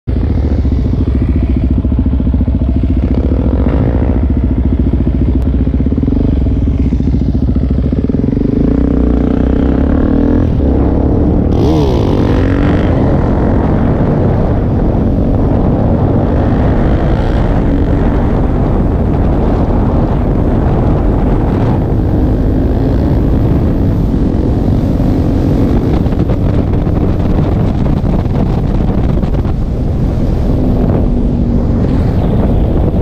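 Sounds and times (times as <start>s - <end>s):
motorcycle engine running: 0.1s - 33.0s
second motorcycle engine: 0.1s - 33.0s.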